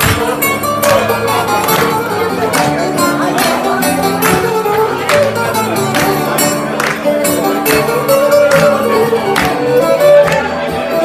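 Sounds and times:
live band with bouzouki violin guitar: 0:00.0 - 0:11.0.

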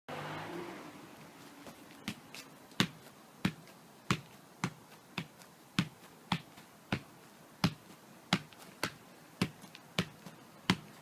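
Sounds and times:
football thumps: 0:02.8 - 0:11.0.

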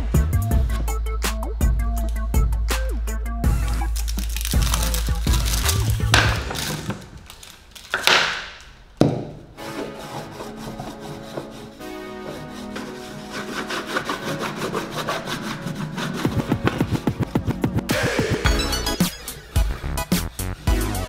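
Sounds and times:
background music: 0:00.0 - 0:07.8, 0:09.1 - 0:21.0
wax scraping on wood: 0:09.6 - 0:17.3.

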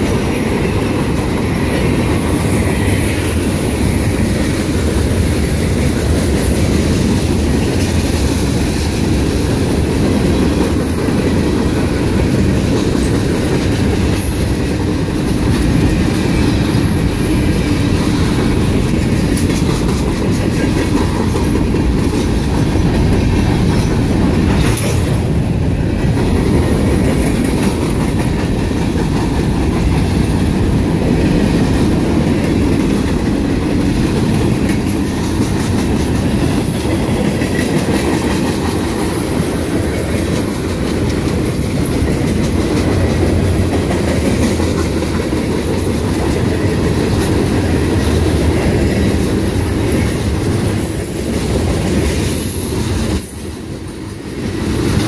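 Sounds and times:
clickety-clack over rail joints: 0:00.0 - 0:55.0
train wheels rumbling on rail: 0:00.0 - 0:55.0.

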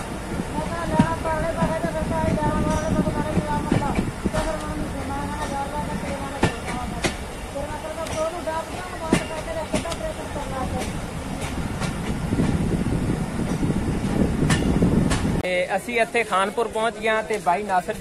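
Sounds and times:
train wheels clacking: 0:00.0 - 0:15.4
train coaches rumbling on track: 0:00.0 - 0:18.0.

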